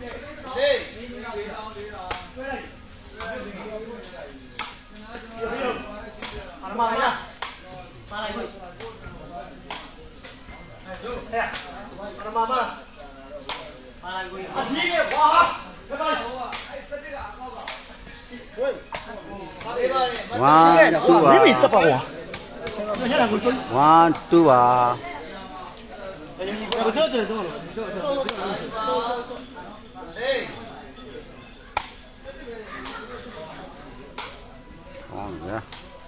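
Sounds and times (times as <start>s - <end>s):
crowd chatter: 0.0s - 36.0s
spectators shouting: 20.3s - 22.1s, 23.0s - 25.0s.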